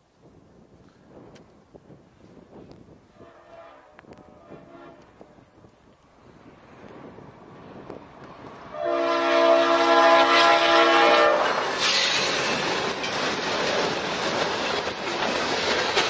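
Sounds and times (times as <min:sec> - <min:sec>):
train air horn blast: 0:03.1 - 0:05.5, 0:08.7 - 0:12.0
locomotives passing: 0:05.4 - 0:16.0.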